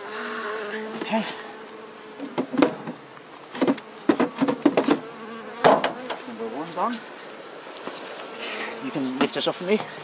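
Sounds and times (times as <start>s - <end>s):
honeybees buzzing: 0.0s - 10.0s
knocks and clunks of hive roof: 0.8s - 1.2s, 2.1s - 6.3s, 8.7s - 10.0s.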